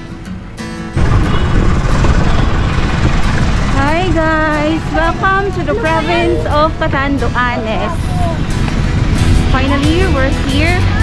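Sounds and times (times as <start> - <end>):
wind buffeting microphone: 1.0 - 11.0.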